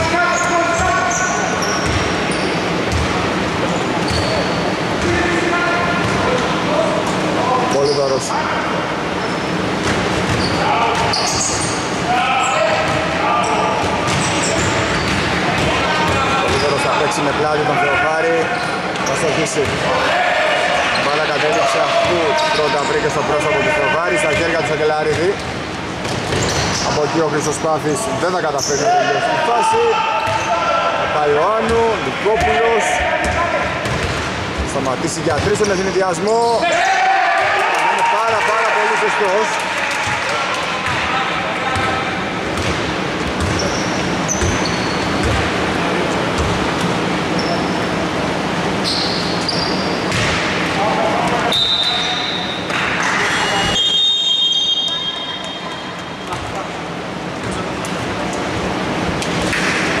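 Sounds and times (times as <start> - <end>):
sneakers squeaking on floor: 0.4 - 5.2, 9.1 - 17.0, 24.2 - 27.1, 28.5 - 29.0, 29.7 - 30.7, 42.6 - 45.6, 46.3 - 48.0, 48.7 - 50.5, 51.3 - 56.6
basketball bouncing on wooden court: 1.8 - 2.1, 33.2 - 34.7, 42.6 - 45.4.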